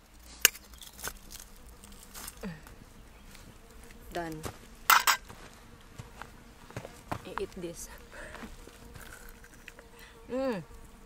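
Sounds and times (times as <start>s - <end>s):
insects buzzing: 0.0s - 11.0s.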